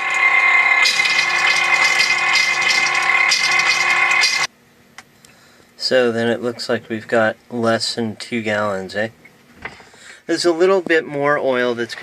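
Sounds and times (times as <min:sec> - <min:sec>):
pump humming and rattling: 0:00.0 - 0:04.5.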